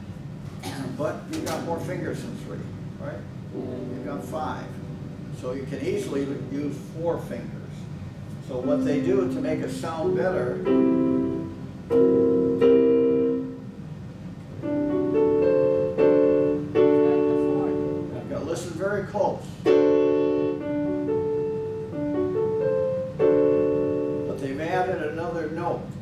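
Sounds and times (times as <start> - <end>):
keyboard piano chords: 1.3 - 26.0.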